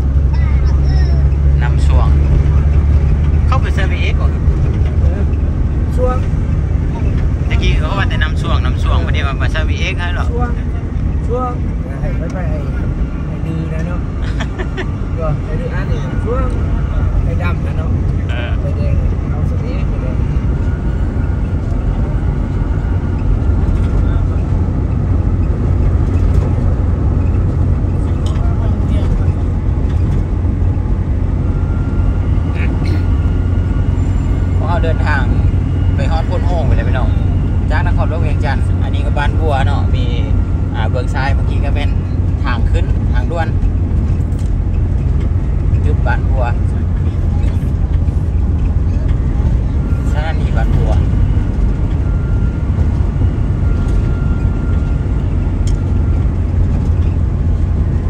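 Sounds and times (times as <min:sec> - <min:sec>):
vehicle road and engine rumble: 0:00.0 - 0:58.0
voices talking: 0:00.2 - 0:43.7, 0:45.6 - 0:54.6.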